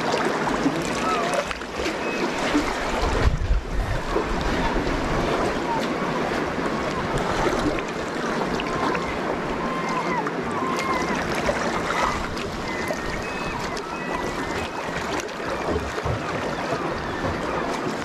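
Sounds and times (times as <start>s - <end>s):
sea water lapping and sloshing: 0.0s - 18.0s.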